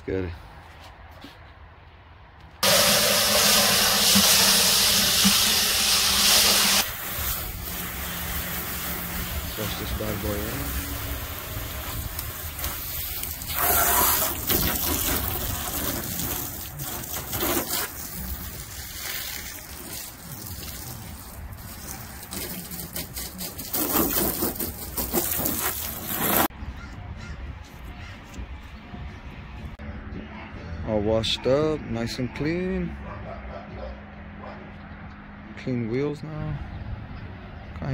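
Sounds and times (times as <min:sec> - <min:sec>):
hose spraying water on car: 0:02.6 - 0:26.5.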